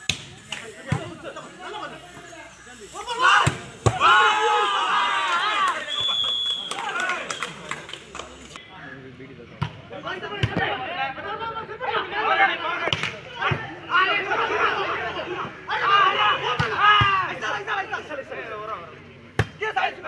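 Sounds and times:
players and spectators shouting: 0.4 - 8.6, 10.0 - 18.8, 19.6 - 20.0.

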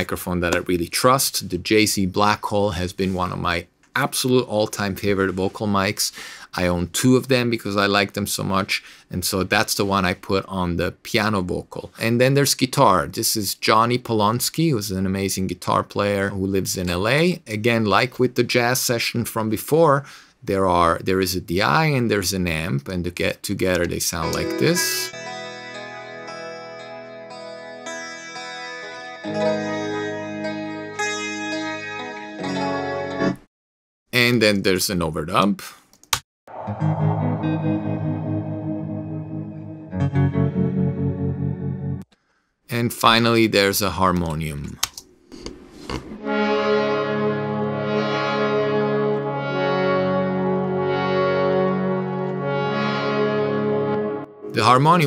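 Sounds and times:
harmonium sustained chord: 24.2 - 29.2, 46.3 - 54.3
electric guitar ringing notes: 24.2 - 32.8, 36.5 - 42.0.

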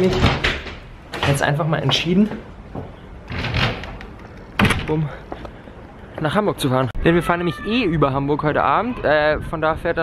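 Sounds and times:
door being handled: 0.0 - 2.0, 2.8 - 5.0.

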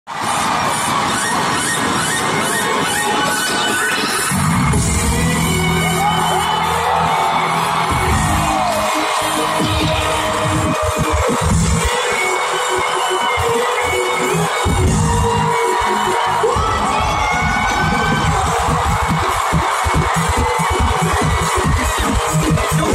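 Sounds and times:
loud electronic concert music: 0.1 - 22.9.

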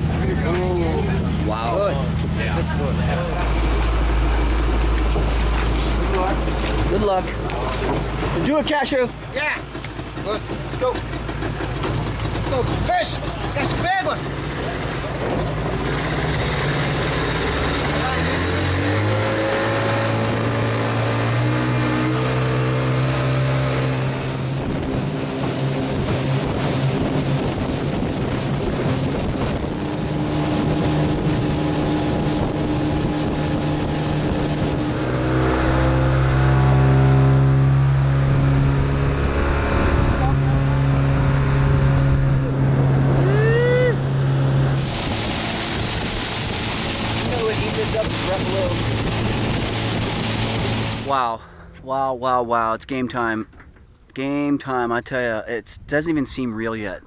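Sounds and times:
outboard motor running: 0.0 - 51.8
wind and water hiss: 13.2 - 37.2, 44.1 - 51.4.

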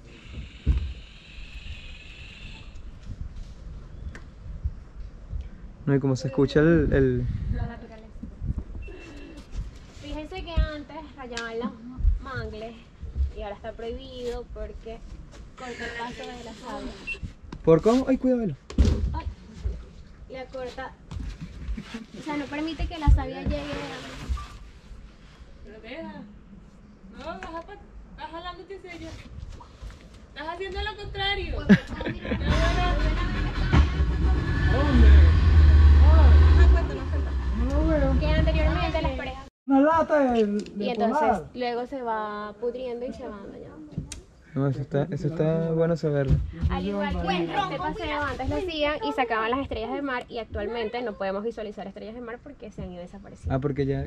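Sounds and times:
bird low curving call: 1.0 - 2.9.

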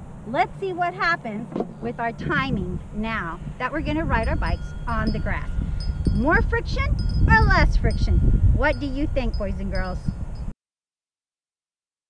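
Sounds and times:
outdoor background noise: 0.0 - 10.5.

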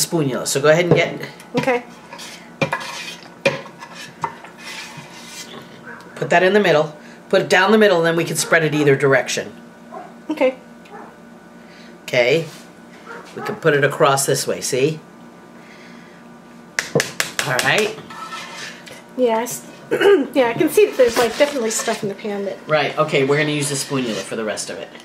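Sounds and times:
metal spoon scraping a steel pot: 1.9 - 5.7, 18.0 - 18.8, 21.0 - 22.1, 23.3 - 24.5.

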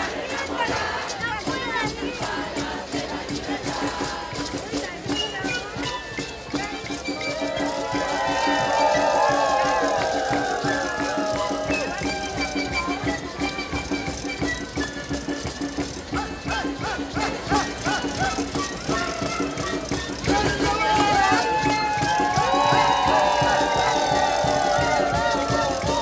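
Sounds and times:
drums: 0.0 - 26.0
voices: 0.0 - 26.0
wind instruments: 0.0 - 26.0.

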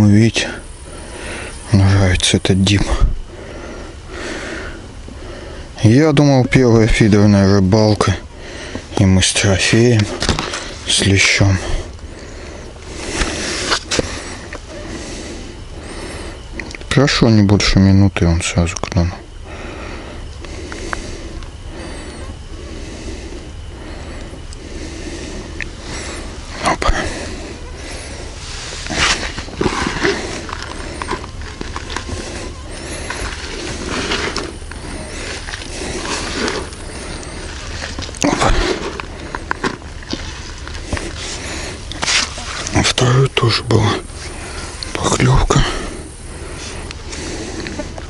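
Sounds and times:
low background hum: 0.0 - 48.0.

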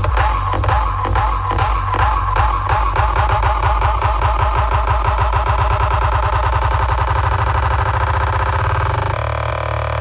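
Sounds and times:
loud distorted electronic dance music: 0.0 - 10.0.

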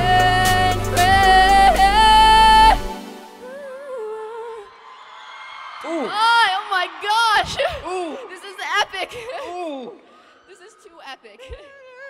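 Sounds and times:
band music: 0.0 - 3.5.

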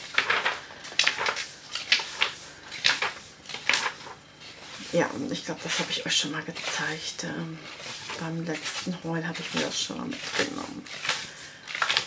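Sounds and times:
paper sheets swishing and rustling: 0.0 - 12.0.

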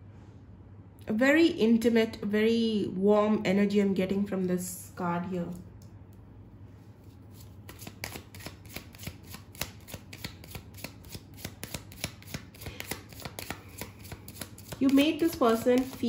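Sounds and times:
cards being shuffled: 7.0 - 16.0.

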